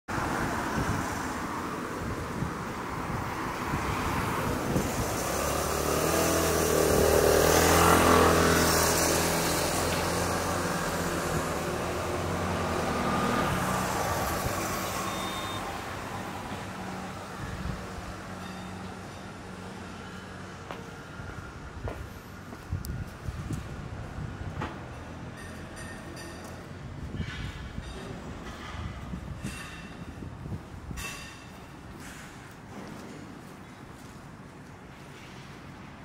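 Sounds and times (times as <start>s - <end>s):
vehicle engine and tyres passing: 0.1s - 36.0s.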